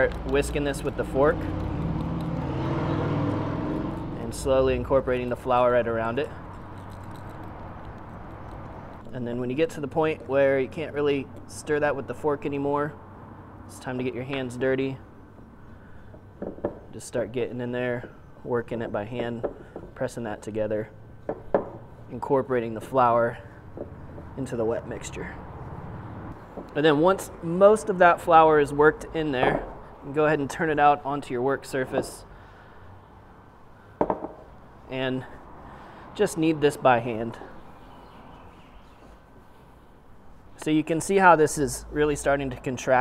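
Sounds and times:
knock on wooden counter: 34.0 - 34.4.

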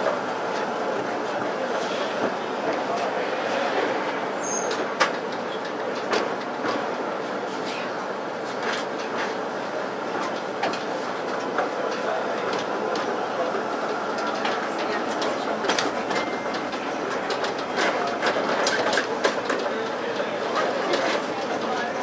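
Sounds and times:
tram rolling rumble: 0.0 - 22.0
wheels clicking over rail joints: 14.1 - 22.0.

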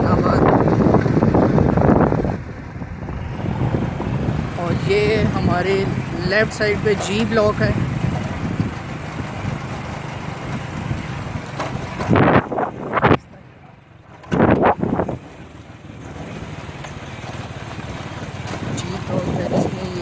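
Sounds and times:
car road and engine rumble: 0.0 - 20.0.

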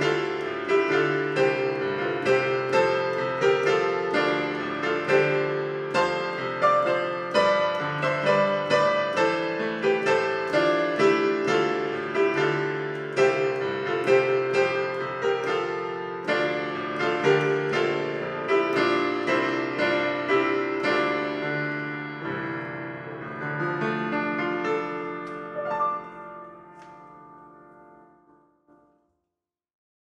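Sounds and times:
digital piano playing: 0.0 - 28.6.

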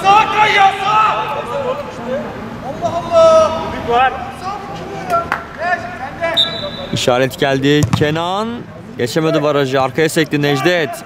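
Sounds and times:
men calling and shouting: 0.0 - 11.0.

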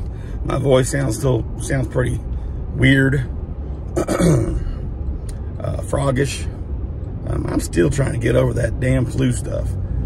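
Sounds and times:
car road rumble: 0.0 - 10.0
man clearing throat: 4.0 - 4.8.

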